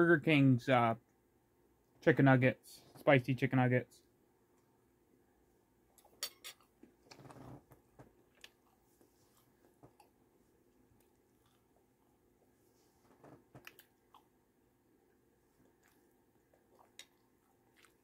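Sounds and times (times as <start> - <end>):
faint chewing: 5.9 - 14.4, 15.3 - 18.0
crunchy chewing: 15.6 - 18.0.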